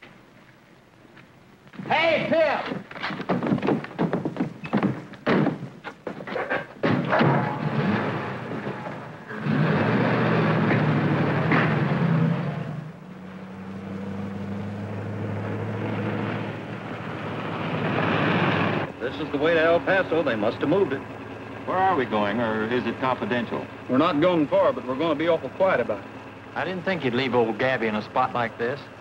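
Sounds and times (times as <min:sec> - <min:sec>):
car engine starting and running: 0:06.8 - 0:29.0.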